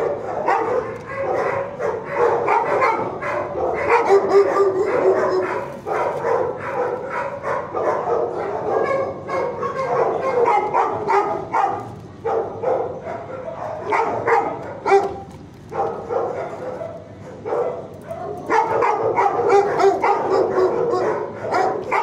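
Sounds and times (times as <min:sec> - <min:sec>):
dogs barking: 0:00.0 - 0:22.0.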